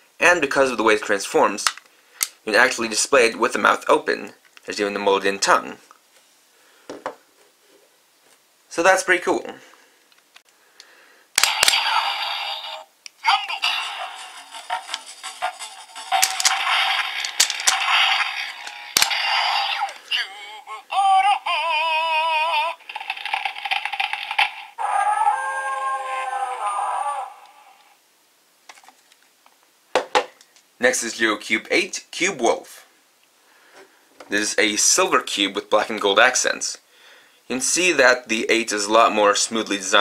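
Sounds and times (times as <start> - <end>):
electronic toy sound effects: 11.4 - 27.8
person speaking: 13.2 - 14.5, 17.4 - 23.6, 24.8 - 27.8, 34.3 - 36.6.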